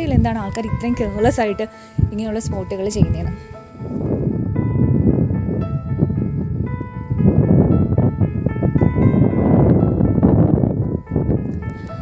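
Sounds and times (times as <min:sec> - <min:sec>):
keyboard music: 0:00.0 - 0:12.0
wind rumble on microphone: 0:00.0 - 0:12.0.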